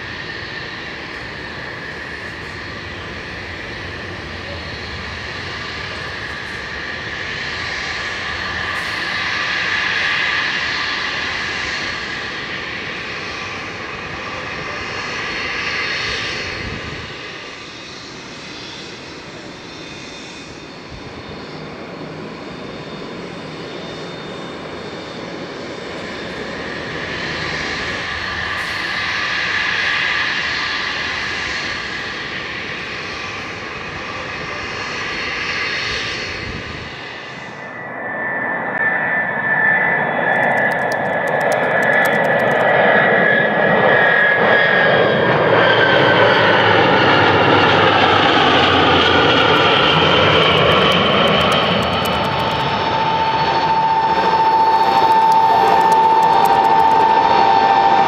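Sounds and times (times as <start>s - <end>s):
aircraft engine noise falling whine: 0.0s - 58.0s
jet engines whining: 0.0s - 58.0s.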